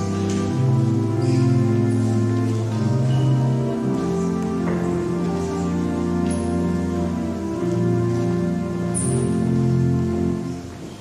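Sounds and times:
organ chords: 0.0s - 11.0s.

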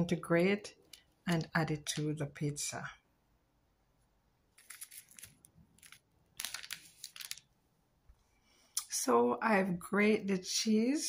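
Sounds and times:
plastic wrapping crinkling: 4.5s - 7.5s.

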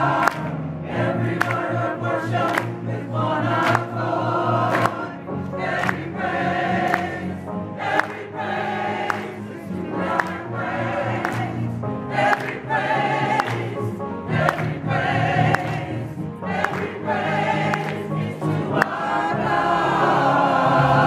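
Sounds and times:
choir singing a lively song: 0.0s - 21.0s
hands clapping in time: 0.1s - 0.6s, 1.2s - 1.8s, 2.4s - 4.0s, 4.6s - 6.2s, 6.8s - 8.4s, 9.0s - 9.4s, 10.0s - 10.4s, 11.2s - 13.8s, 14.4s - 14.8s, 15.4s - 16.0s, 16.6s - 19.0s.

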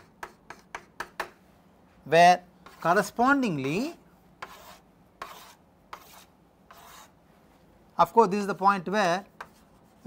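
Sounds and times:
chalk drawing on chalkboard: 0.0s - 1.2s, 2.6s - 7.2s, 9.3s - 10.0s.

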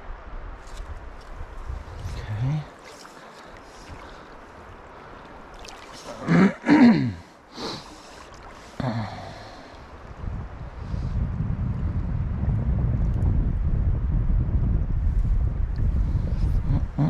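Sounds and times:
wind buffeting microphone: 0.0s - 6.6s, 7.8s - 17.0s
flowing creek: 0.0s - 11.0s.

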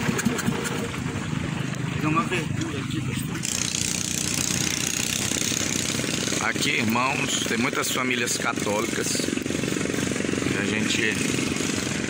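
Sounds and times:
small boat motor running: 0.0s - 12.0s.

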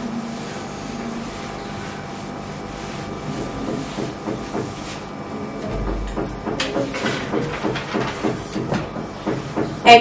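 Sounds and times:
duster rubbing a whiteboard: 0.0s - 10.0s
room hum and hiss: 0.0s - 10.0s.

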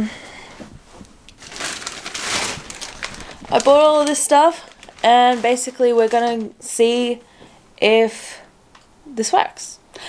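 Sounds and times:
packaging rustling and crinkling: 1.3s - 7.2s.

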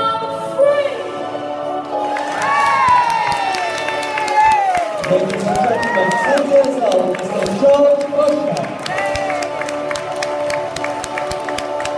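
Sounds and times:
audience clapping and cheering: 1.8s - 11.9s.

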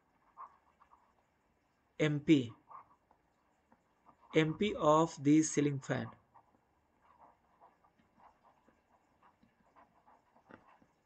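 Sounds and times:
stylus scratching on tablet: 0.0s - 11.0s.

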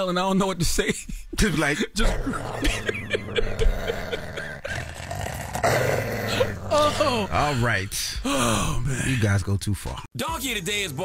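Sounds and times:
men laughing breathily: 1.0s - 9.3s
gasping breath: 3.5s - 9.3s.

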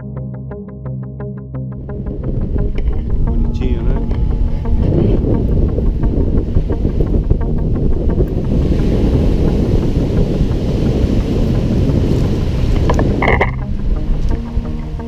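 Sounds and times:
wind rumbling on microphone: 1.8s - 15.0s.

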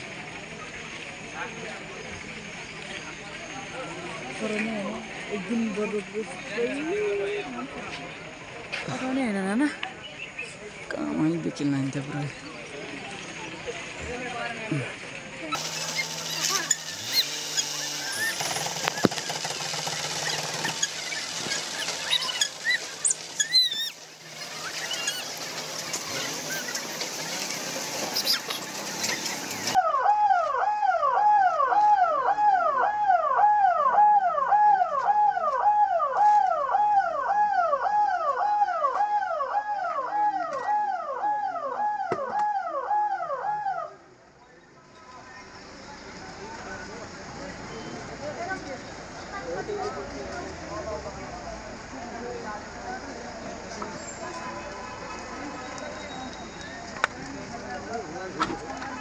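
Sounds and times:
crowd noise: 0.0s - 29.8s, 44.0s - 59.0s
engines: 0.0s - 29.9s, 44.0s - 59.0s
ambulance siren wailing: 29.7s - 43.9s.

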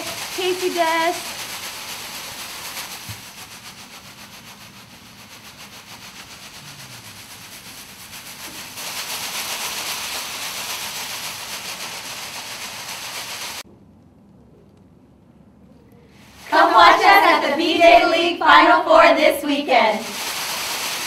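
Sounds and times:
foil pom-poms crinkling: 0.0s - 13.6s, 16.2s - 21.0s.

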